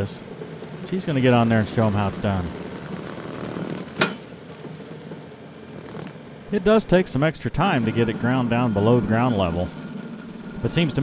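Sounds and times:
stump grinder grinding: 0.0s - 6.6s, 7.5s - 11.0s
tractor engine under load: 0.0s - 11.0s.

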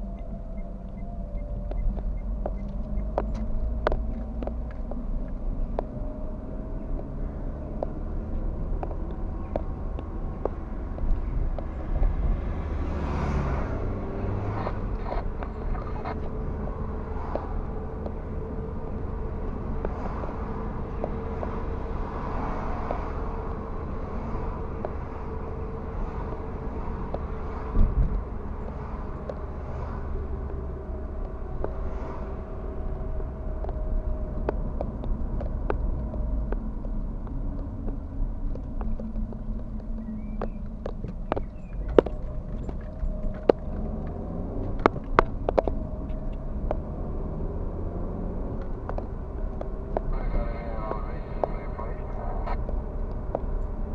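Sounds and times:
car interior driving rumble: 0.0s - 53.9s.

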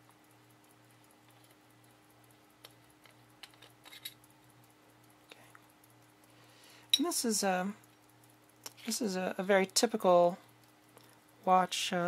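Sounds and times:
low steady hum: 0.0s - 12.0s
small metal clicks and scrapes: 0.0s - 12.0s.

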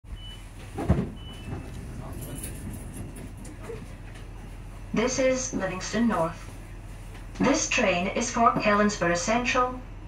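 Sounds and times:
train cabin hum: 0.1s - 10.0s.

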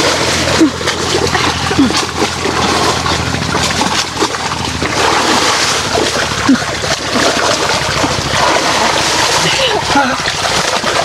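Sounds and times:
river water splashing: 0.0s - 11.0s.

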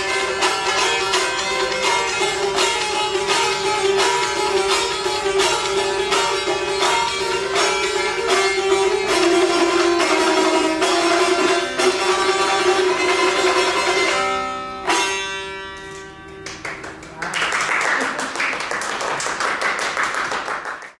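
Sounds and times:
lute strummed quickly: 0.0s - 16.0s.

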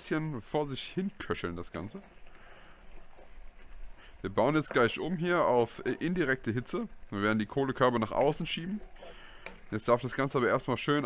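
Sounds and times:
chili sizzling in a pot: 0.0s - 11.0s.

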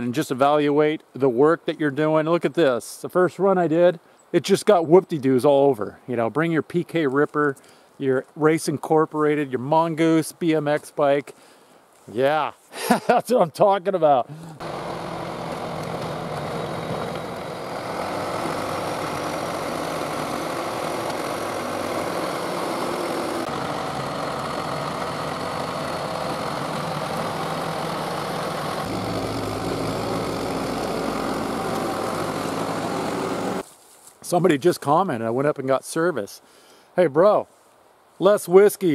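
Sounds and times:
bulldozer diesel engine running: 14.4s - 33.6s.

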